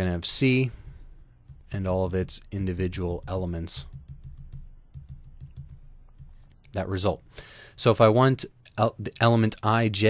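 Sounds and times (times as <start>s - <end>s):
stylus tapping on drawing tablet: 0.7s - 6.8s.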